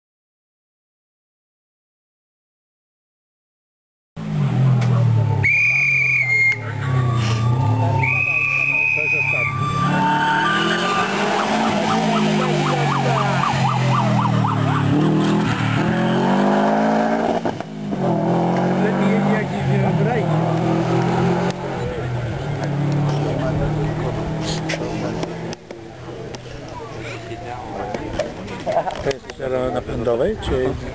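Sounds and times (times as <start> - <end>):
rally car engine revving: 4.2 - 27.0
shrill whistle blasts: 5.4 - 11.2.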